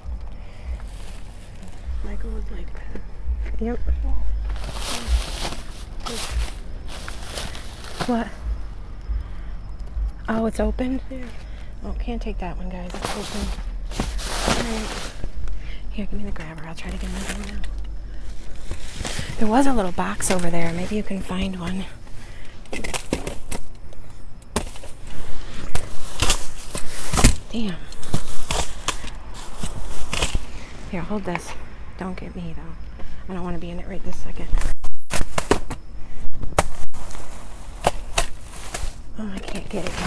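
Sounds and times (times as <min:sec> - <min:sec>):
plastic bags rustling: 0:00.0 - 0:03.2, 0:04.3 - 0:09.0, 0:12.7 - 0:31.1, 0:36.7 - 0:40.0
microphone handling rumble: 0:00.0 - 0:21.9.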